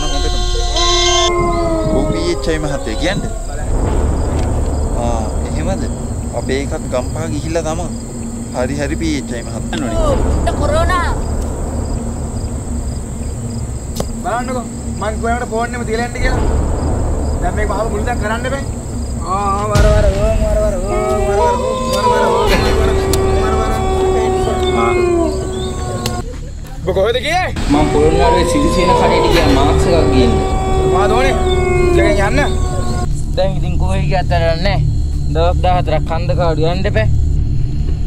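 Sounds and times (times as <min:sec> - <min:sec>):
long howl with falling pitch: 0:00.0 - 0:26.3, 0:27.6 - 0:33.2
crickets trilling: 0:00.0 - 0:38.0.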